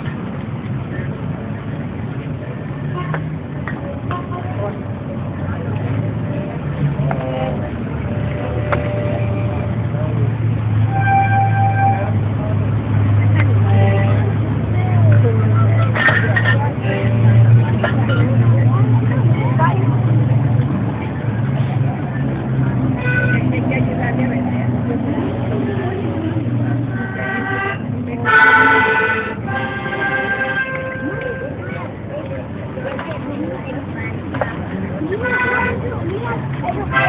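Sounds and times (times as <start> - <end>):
traffic engine drone: 0.0 - 37.0
short horn-like tone: 10.9 - 12.1.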